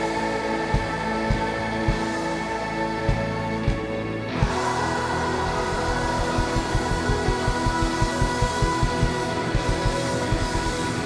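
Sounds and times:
live pop band and choir: 0:00.0 - 0:11.0
kick drum beat: 0:05.5 - 0:10.8.

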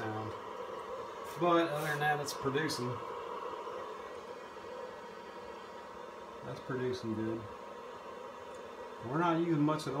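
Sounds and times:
small cooling fans hissing: 0:00.0 - 0:10.0.

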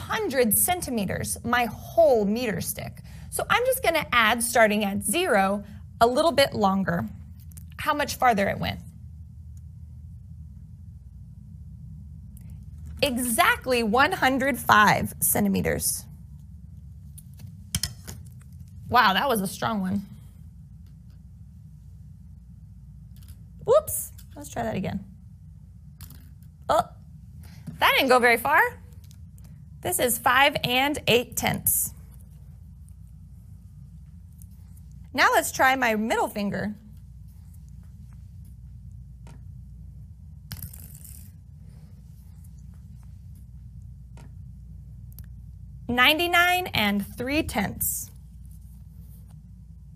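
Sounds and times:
low hum: 0:00.0 - 0:49.9
small ball scraping across table: 0:40.5 - 0:41.5.

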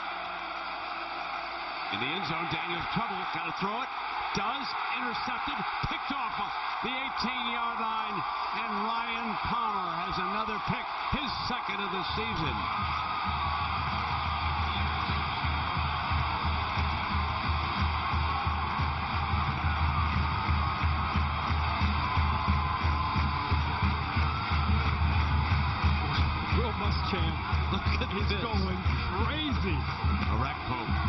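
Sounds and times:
stadium crowd noise: 0:00.0 - 0:31.0
music with steady drum beat: 0:12.7 - 0:31.0.

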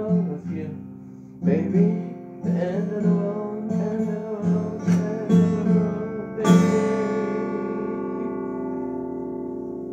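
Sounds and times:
acoustic guitar chord ringing: 0:00.0 - 0:09.9.

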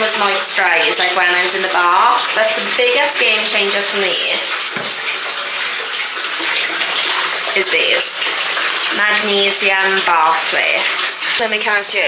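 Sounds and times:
bath tap water pouring: 0:00.0 - 0:12.0.

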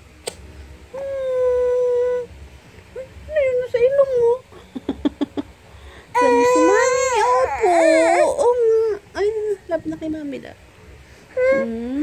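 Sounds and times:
toddler crying and whimpering: 0:01.0 - 0:02.3, 0:06.1 - 0:09.5, 0:11.3 - 0:12.0.

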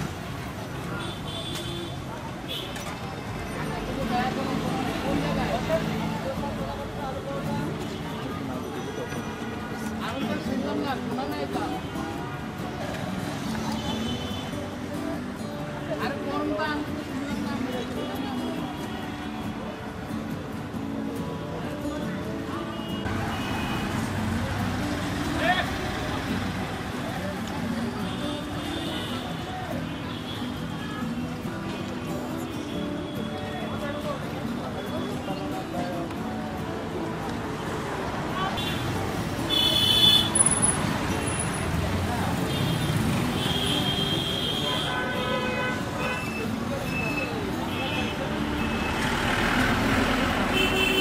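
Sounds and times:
road traffic noise: 0:00.0 - 0:51.0
people talking: 0:02.0 - 0:12.9.

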